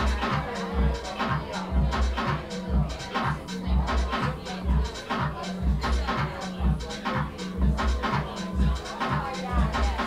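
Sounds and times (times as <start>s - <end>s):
deep bass line: 0.0s - 10.0s.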